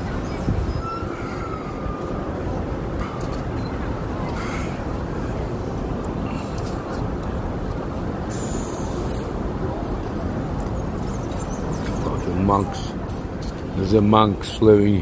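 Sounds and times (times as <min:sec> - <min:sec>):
distant voices: 0:00.0 - 0:15.0
low traffic rumble: 0:00.0 - 0:15.0.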